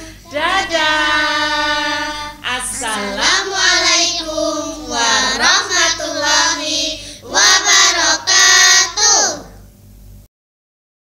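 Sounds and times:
children singing: 0.0s - 9.5s.

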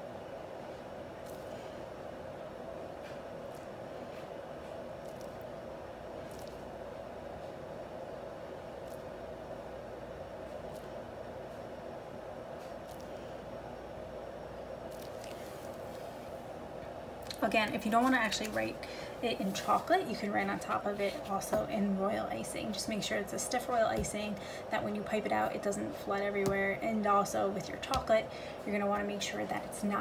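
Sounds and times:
steady background hum: 0.0s - 30.0s.

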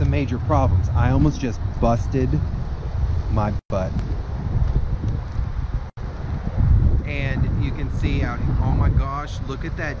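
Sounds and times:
road traffic hum: 0.0s - 10.0s
wind buffeting microphone: 0.0s - 10.0s.

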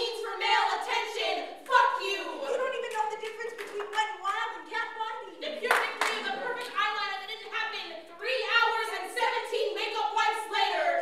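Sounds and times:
people clapping: 2.6s - 4.5s, 5.6s - 6.9s.

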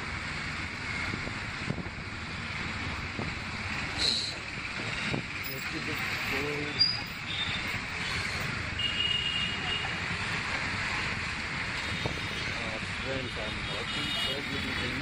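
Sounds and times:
motorcycle engine and road noise: 0.0s - 15.0s.

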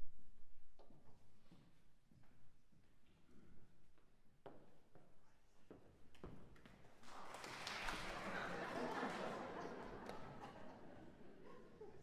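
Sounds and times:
murmur of audience chatter: 7.2s - 11.9s.

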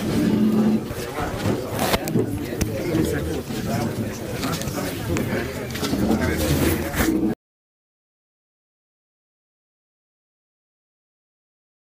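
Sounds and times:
indistinct chatter: 0.0s - 7.4s.

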